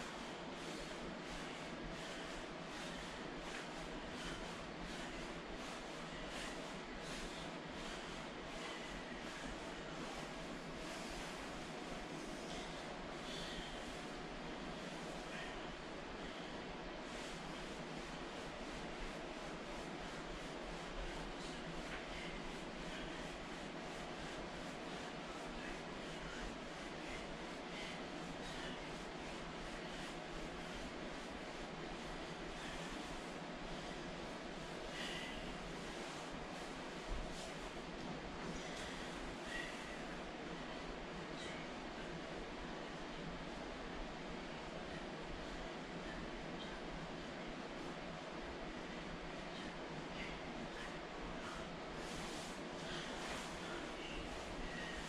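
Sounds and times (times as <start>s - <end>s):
room noise hiss: 0.0s - 55.0s.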